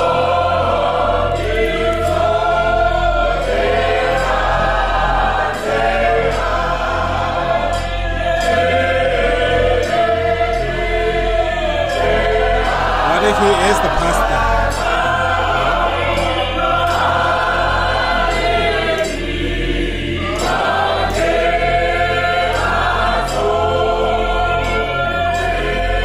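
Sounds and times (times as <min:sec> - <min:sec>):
congregation singing a hymn: 0:00.0 - 0:26.0.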